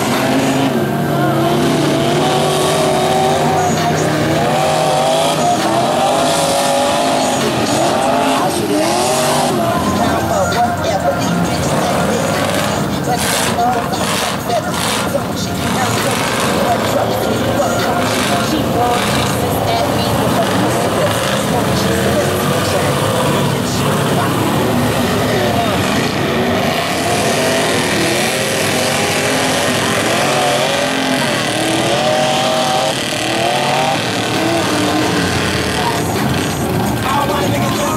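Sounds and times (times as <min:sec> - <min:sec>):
truck engine revving: 0:00.0 - 0:37.9
tyres churning through mud: 0:00.0 - 0:37.9
voices: 0:00.0 - 0:37.9.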